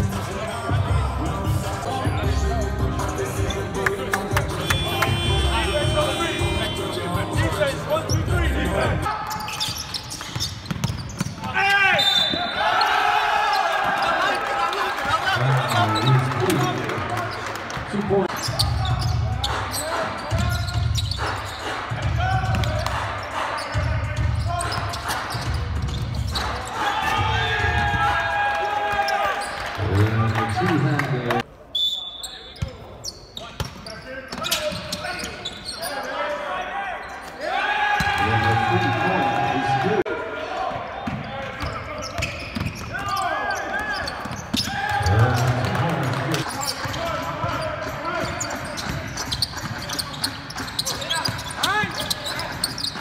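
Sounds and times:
sneaker squeaks: 4.6s - 8.4s, 9.1s - 12.9s, 18.3s - 21.8s, 22.4s - 26.8s, 31.8s - 36.2s, 41.1s - 45.7s, 46.4s - 53.0s
basketball bouncing on wood court: 10.2s - 11.5s
players shouting: 11.4s - 17.1s, 26.3s - 30.1s, 36.0s - 41.8s, 42.9s - 47.6s.

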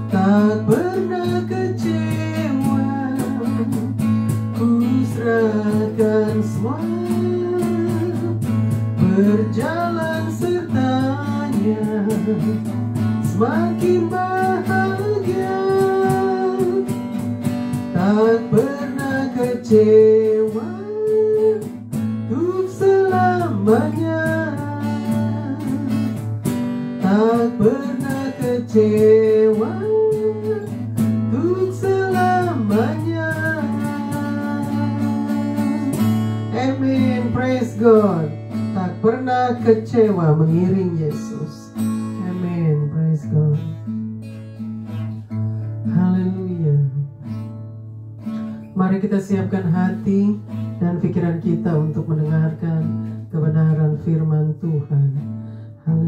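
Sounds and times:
woman singing: 0.0s - 4.0s, 4.6s - 17.0s, 18.0s - 26.2s, 27.0s - 43.8s
acoustic guitar strumming: 0.0s - 56.0s.

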